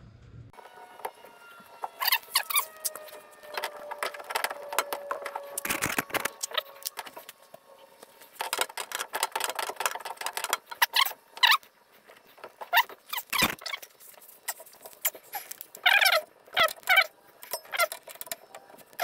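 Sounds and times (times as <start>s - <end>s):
rubbing squeaks: 0.6s - 19.0s
metallic clicks and scrapes: 1.9s - 19.0s.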